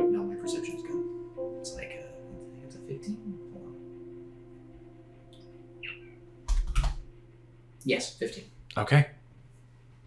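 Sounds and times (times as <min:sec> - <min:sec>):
faint background music chord: 0:00.0 - 0:08.6.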